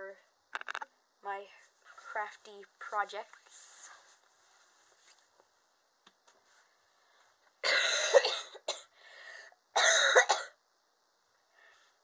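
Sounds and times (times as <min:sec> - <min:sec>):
person coughing: 0:07.6 - 0:08.9, 0:09.8 - 0:10.6.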